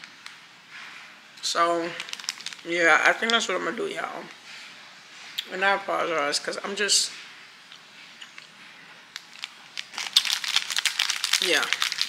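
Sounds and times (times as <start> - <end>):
plastic wrapper crinkling: 1.8 - 3.5, 9.1 - 12.0.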